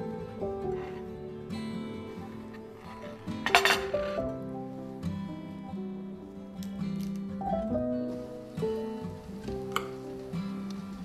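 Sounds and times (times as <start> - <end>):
soft acoustic guitar music: 0.0 - 11.0.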